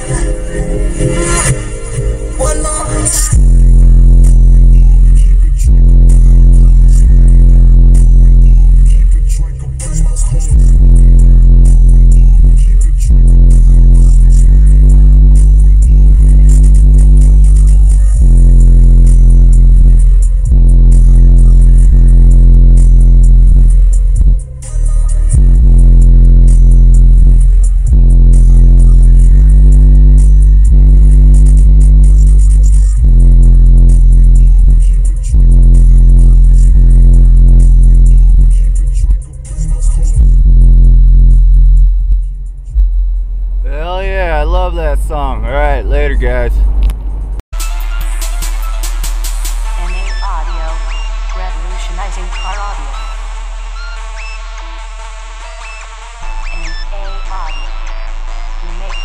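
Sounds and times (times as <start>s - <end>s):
loud bass-heavy electronic music: 0.0s - 59.0s.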